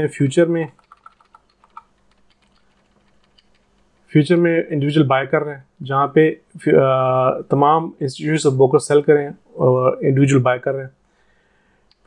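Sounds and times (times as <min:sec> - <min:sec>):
keyboard key clicks: 0:00.8 - 0:03.7.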